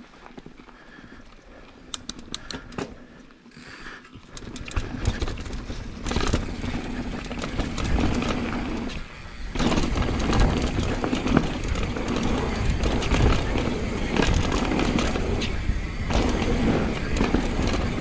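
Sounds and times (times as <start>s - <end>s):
bike tyres rolling over dirt: 0.0s - 18.0s
bike chain and frame rattle: 1.8s - 18.0s.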